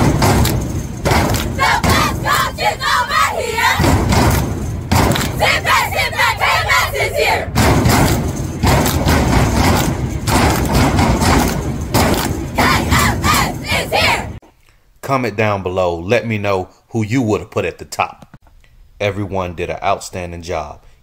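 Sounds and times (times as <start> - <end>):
sharp percussive hits: 0.0 - 14.0
girls shouting a cheer chant: 1.4 - 4.0, 5.2 - 7.6, 12.6 - 14.4.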